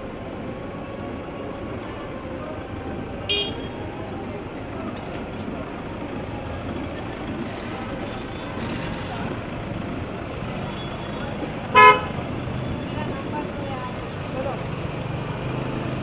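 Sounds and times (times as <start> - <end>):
street traffic noise: 0.0 - 16.0
car horn toot: 3.3 - 3.8, 11.7 - 12.2.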